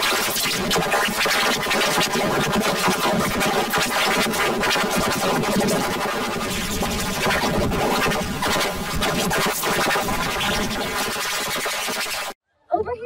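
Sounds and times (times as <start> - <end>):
harsh distorted electronic noise: 0.0 - 12.4.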